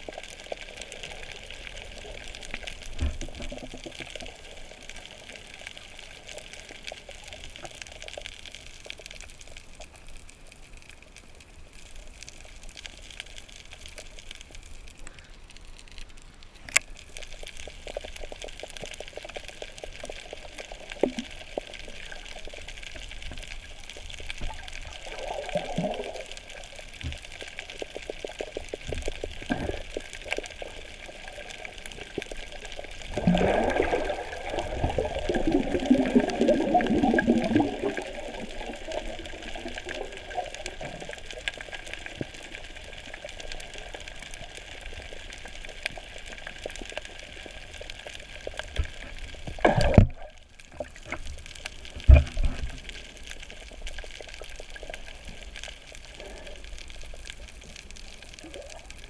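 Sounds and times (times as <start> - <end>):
water bubbling and gurgling: 0.0 - 14.8, 16.7 - 59.0.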